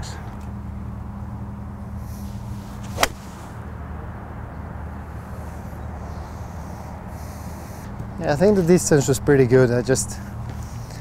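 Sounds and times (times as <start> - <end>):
steady low hum: 0.0 - 8.5
golf club striking ball: 2.8 - 3.4.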